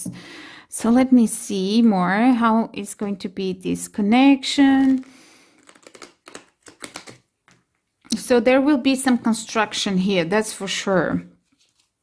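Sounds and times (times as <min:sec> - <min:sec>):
cards clicking: 0:04.9 - 0:07.6.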